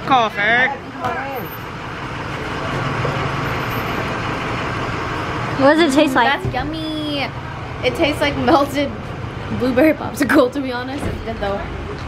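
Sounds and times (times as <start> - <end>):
vehicle engine running: 0.0 - 12.0.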